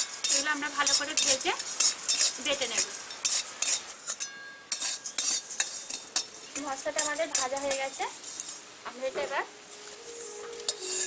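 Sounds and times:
metal spatula scraping a pan: 0:00.0 - 0:08.6, 0:10.0 - 0:11.0.

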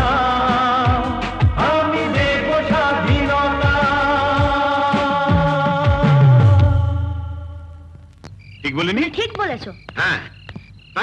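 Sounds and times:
frogs croaking: 0:08.2 - 0:11.0.

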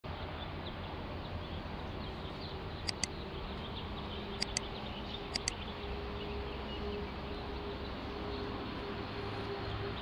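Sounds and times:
mouse double click: 0:02.9 - 0:03.1, 0:04.4 - 0:04.7, 0:05.3 - 0:05.6.

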